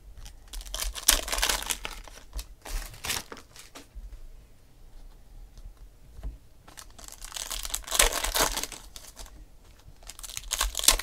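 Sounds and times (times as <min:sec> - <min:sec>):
foil wrapper crinkling and tearing: 0:00.2 - 0:03.8, 0:06.7 - 0:09.4, 0:10.0 - 0:11.0.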